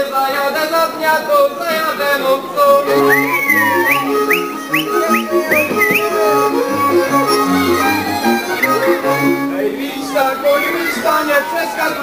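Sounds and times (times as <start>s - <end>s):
fiddle band playing dance tune: 2.8s - 10.2s
sharp rising whistles: 3.0s - 6.1s.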